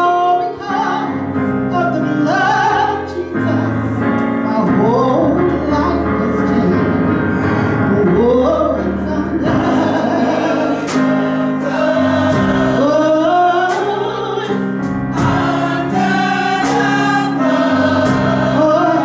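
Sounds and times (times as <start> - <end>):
gospel choir singing: 0.0 - 19.0
keyboard: 0.0 - 19.0
drum kit: 9.5 - 13.0, 13.6 - 19.0.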